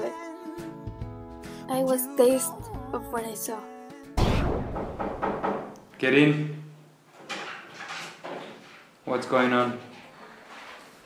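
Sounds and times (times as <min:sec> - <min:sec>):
door knocks and rattles: 0:04.8 - 0:05.8.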